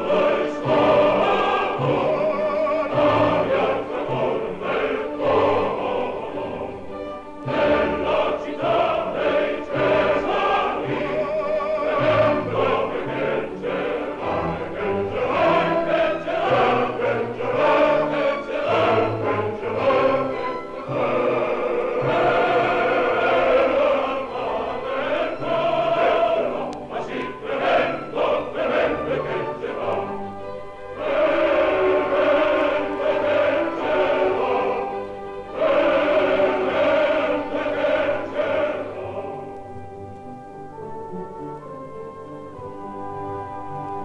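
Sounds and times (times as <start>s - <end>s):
opera chorus singing: 0.0s - 44.0s
orchestra playing: 0.0s - 44.0s.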